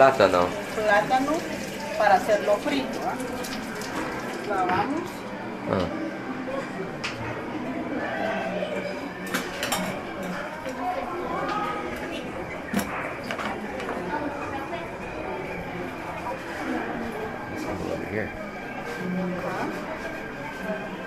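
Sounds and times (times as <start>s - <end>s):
low background voices: 0.0s - 21.0s
kitchen utensils clinking: 9.0s - 10.8s.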